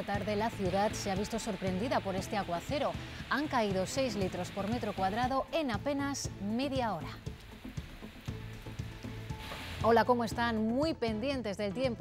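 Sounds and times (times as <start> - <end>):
woman speaking: 0.0 - 7.3, 9.8 - 12.0
low news music bed: 0.0 - 12.0.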